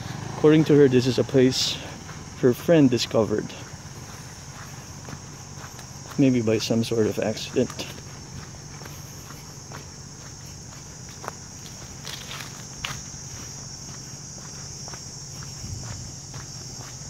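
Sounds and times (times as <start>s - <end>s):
footsteps on dirt path: 0.0s - 17.0s
insects buzzing: 0.0s - 17.0s.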